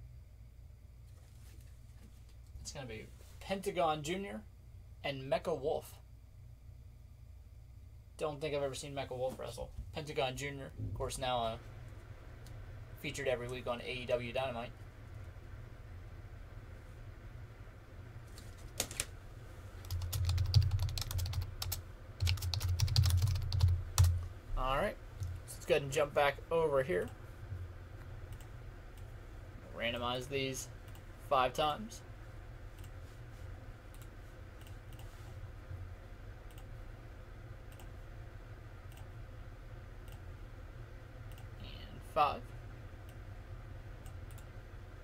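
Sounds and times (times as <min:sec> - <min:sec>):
low hum: 0:04.2 - 0:45.0
computer keyboard typing: 0:19.8 - 0:24.2
computer mouse clicks: 0:33.9 - 0:35.1, 0:36.5 - 0:36.7, 0:44.0 - 0:44.5.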